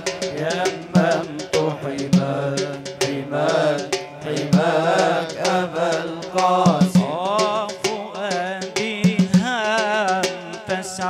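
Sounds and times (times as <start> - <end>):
sustained vocal drone: 0.0 - 7.8
sharp percussion hits: 0.0 - 11.0.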